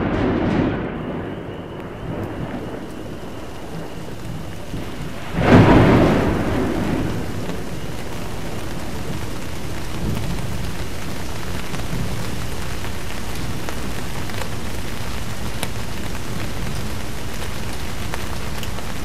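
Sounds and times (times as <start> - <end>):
steady rain: 0.0 - 19.0
thunderclap rumbling: 0.0 - 19.0.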